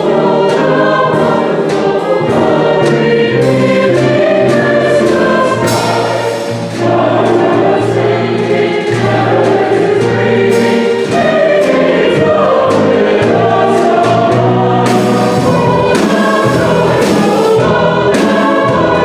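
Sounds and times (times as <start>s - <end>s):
bass notes: 0.0s - 19.0s
mixed choir singing: 0.0s - 19.0s
piano: 0.0s - 19.0s
cymbal strokes: 5.6s - 6.8s.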